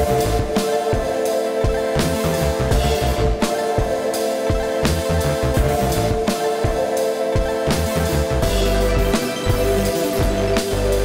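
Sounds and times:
background music with drum beat: 0.0s - 11.0s.

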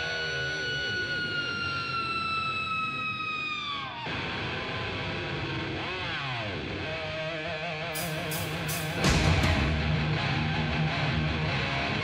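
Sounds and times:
siren-like sound: 0.0s - 4.1s
electric guitar note sliding down: 8.0s - 12.0s.

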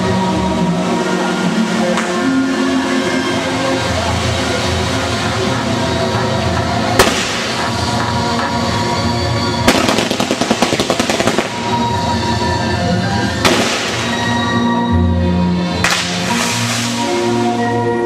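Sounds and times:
waltz music: 0.0s - 18.0s
firework bangs: 5.7s - 12.4s, 13.4s - 14.6s, 15.8s - 17.2s
crackling firework pops: 6.9s - 8.6s, 9.6s - 11.8s, 13.4s - 14.4s, 15.8s - 17.0s.

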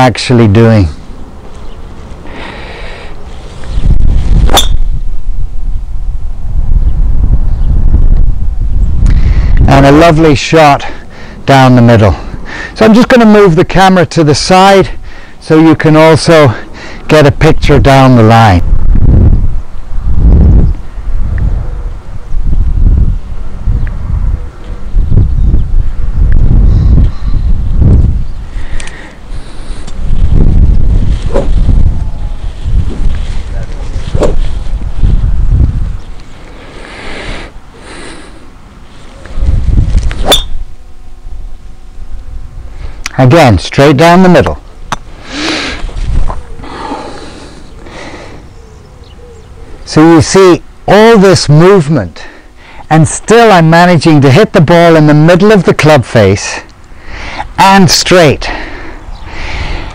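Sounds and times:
wind buffeting microphone: 0.8s - 12.8s, 16.6s - 43.0s, 44.5s - 50.0s, 58.4s - 59.9s
golf driver striking ball: 4.5s - 4.9s, 40.2s - 40.6s.

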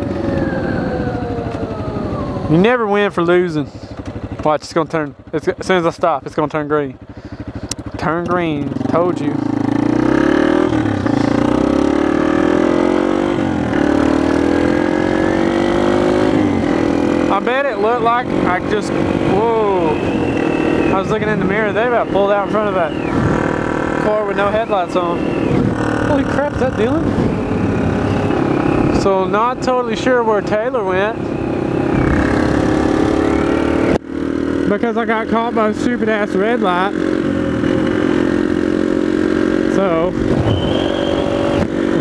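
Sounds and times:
motorcycle engine accelerating: 0.0s - 42.0s.

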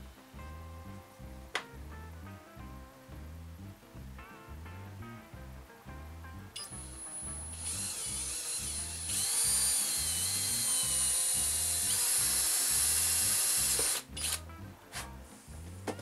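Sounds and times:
background music with steady beat: 0.0s - 16.0s
cordless drill whining: 6.6s - 14.4s.

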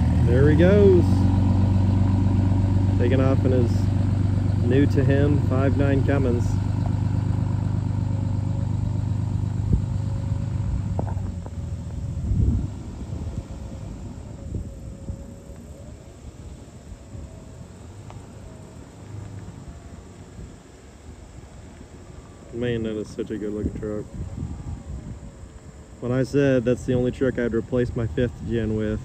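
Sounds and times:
diesel truck engine rumbling: 0.0s - 29.0s.

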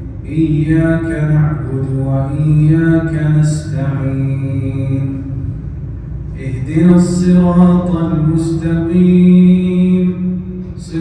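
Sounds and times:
man chanting melodic recitation: 0.2s - 5.4s, 6.4s - 11.0s.

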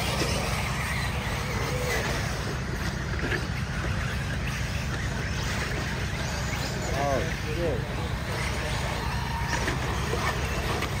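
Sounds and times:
electric toy car motors whining: 0.0s - 11.0s.

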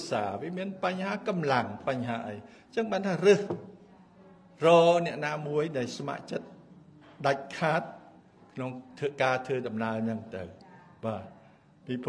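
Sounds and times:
man giving a speech: 0.0s - 3.6s, 4.6s - 6.5s, 7.2s - 7.9s, 8.6s - 12.0s.

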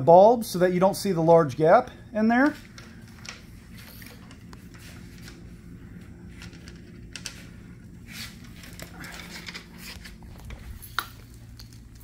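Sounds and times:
steady low hum: 0.0s - 12.0s
wire and plastic sockets rustling: 8.2s - 12.0s.

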